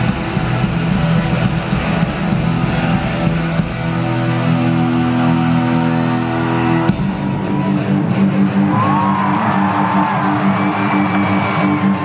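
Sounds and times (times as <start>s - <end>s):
electric guitar droning chord: 0.0s - 8.7s
crowd whooping and cheering: 5.0s - 12.0s.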